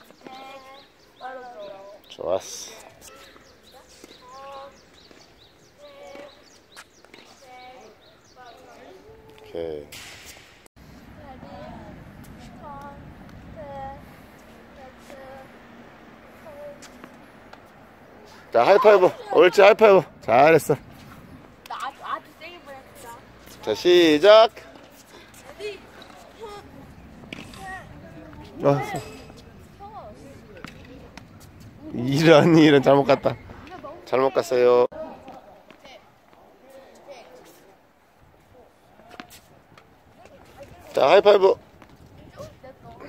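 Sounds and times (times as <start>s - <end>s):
tennis balls struck by rackets: 27.0s - 31.8s.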